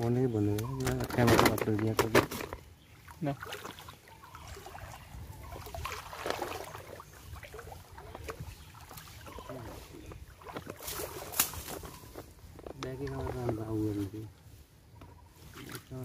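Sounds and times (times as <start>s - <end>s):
water splashing and sloshing: 0.5s - 14.1s, 15.1s - 16.0s.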